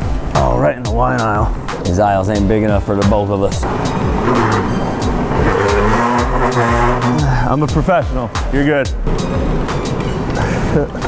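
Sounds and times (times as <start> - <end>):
background music with a beat: 0.0 - 11.0
wheels scraping on smooth floor: 3.6 - 7.1.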